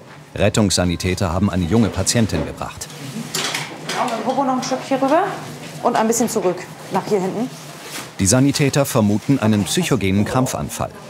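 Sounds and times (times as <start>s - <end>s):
person speaking: 8.2s - 11.0s.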